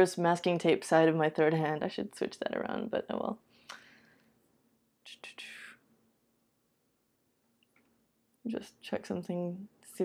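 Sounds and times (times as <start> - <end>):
woman whispering: 5.1 - 5.8.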